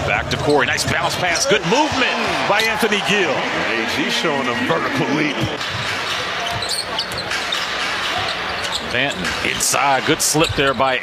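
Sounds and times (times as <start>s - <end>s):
arena crowd murmur: 1.4s - 8.9s.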